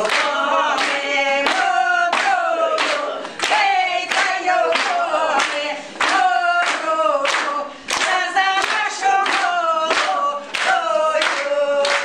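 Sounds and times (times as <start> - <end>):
hand claps: 0.0 - 12.0
women singing unaccompanied: 0.0 - 12.0.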